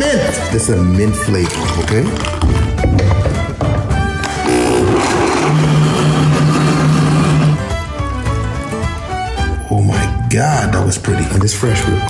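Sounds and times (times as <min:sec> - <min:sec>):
background music: 0:00.0 - 0:12.0
blender motor running: 0:04.2 - 0:07.7.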